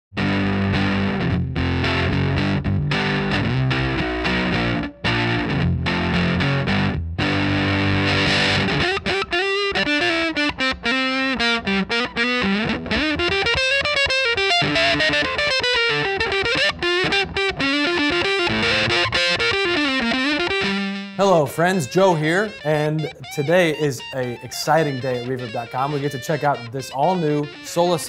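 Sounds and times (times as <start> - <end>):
fuzzed electric guitar: 0.2 - 28.0.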